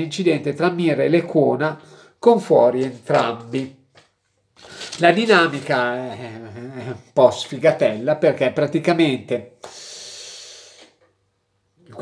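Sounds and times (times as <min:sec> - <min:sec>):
man's breathy hissing exhale: 0:09.6 - 0:11.0.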